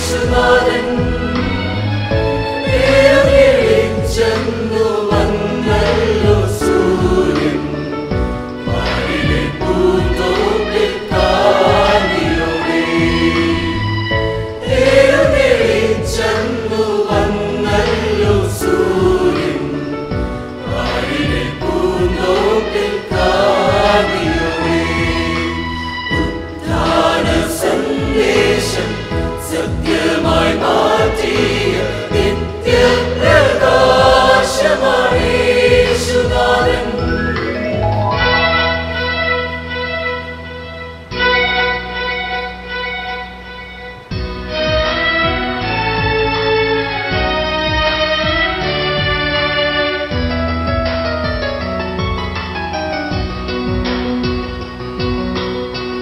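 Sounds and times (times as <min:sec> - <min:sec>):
mixed choir singing a hymn: 0:00.0 - 0:39.5.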